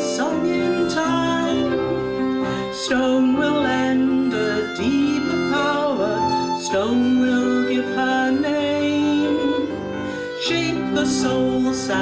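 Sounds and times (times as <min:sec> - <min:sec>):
violin: 0:00.0 - 0:12.0.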